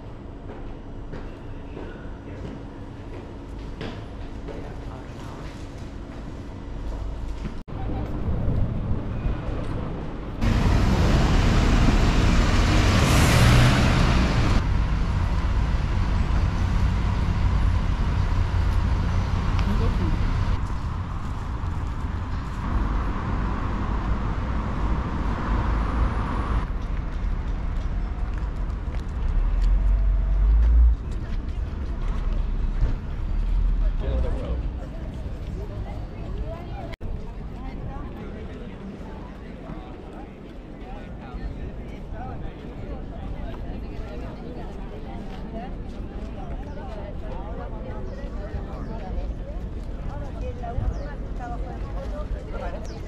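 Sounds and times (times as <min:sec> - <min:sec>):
road traffic passing: 0:08.8 - 0:37.0.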